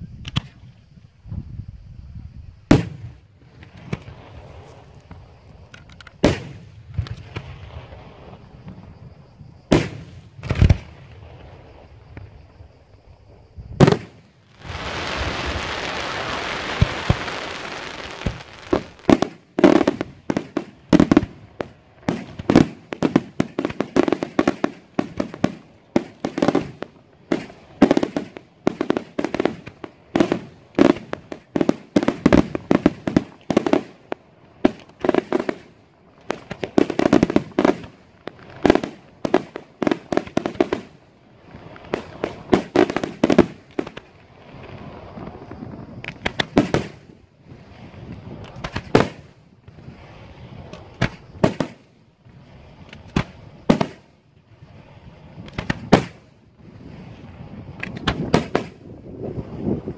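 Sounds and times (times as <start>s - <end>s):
fireworks bursting with loud bangs: 2.6s - 12.5s, 13.7s - 59.9s
fireworks crackling: 2.7s - 12.5s, 13.4s - 59.9s.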